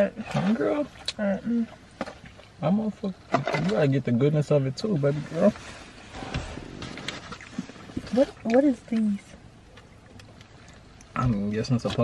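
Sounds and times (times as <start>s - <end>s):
low thump: 6.1s - 8.1s.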